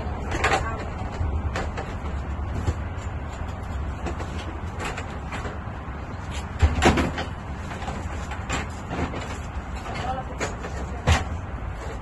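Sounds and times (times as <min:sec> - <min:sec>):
knocks and clatter of items: 0:00.1 - 0:12.0.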